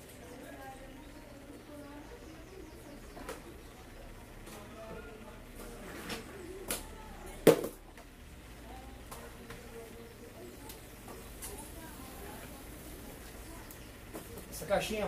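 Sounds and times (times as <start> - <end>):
faint background voices: 0.0 - 15.0.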